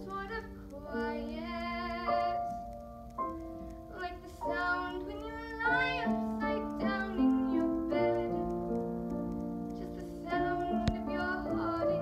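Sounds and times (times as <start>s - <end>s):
girl singing: 0.0s - 2.7s, 3.8s - 8.7s, 9.7s - 12.0s.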